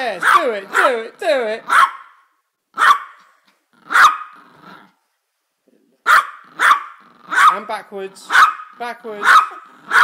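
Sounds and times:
small dog yapping: 1.7s - 2.2s, 2.8s - 3.3s, 3.9s - 4.4s, 6.1s - 7.6s, 8.3s - 10.0s.

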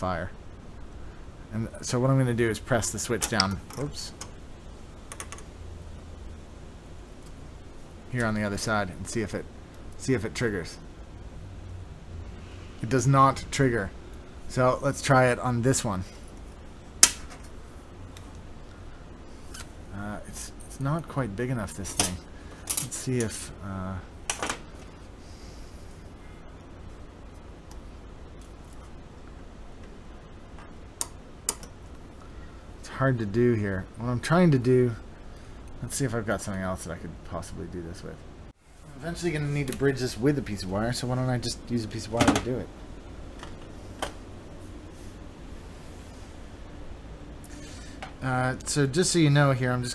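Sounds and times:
low hum: 0.0s - 49.9s.

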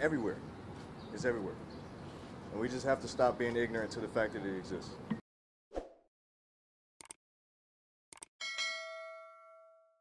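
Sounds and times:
notification bell ding: 8.4s - 10.0s.

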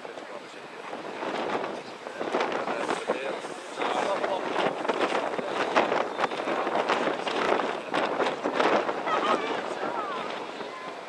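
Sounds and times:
gusty wind on microphone: 0.0s - 11.0s.

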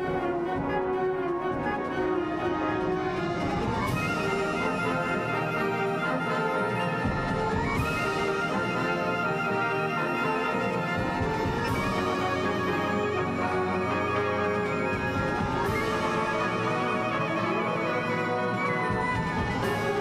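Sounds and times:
wind band playing concert piece: 0.0s - 20.0s.

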